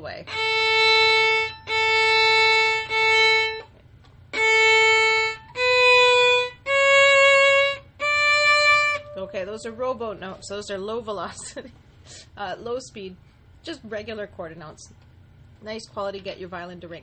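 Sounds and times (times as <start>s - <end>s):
violin playing bowed notes: 0.2s - 3.7s, 4.3s - 10.2s.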